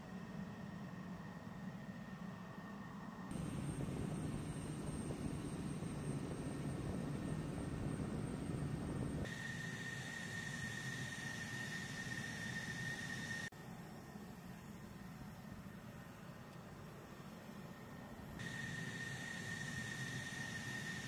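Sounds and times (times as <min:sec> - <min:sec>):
high engine whine: 0:00.0 - 0:21.0
aircraft engine rumble: 0:00.2 - 0:21.0.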